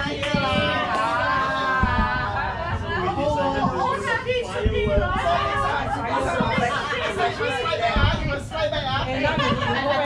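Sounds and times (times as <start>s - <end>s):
people chatting: 0.0s - 10.0s.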